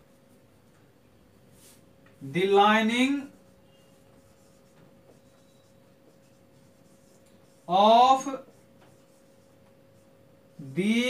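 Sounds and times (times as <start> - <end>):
marker writing on whiteboard: 1.6 - 11.0.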